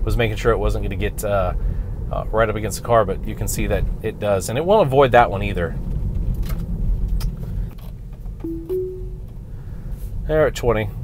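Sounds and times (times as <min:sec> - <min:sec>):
road and tyre rumble: 0:00.0 - 0:08.4
two-note rising chime: 0:08.5 - 0:09.2.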